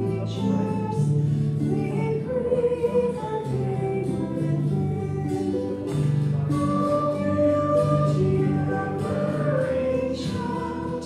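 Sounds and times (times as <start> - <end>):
acoustic guitar: 0.0 - 11.0
person singing a hymn: 0.0 - 11.0.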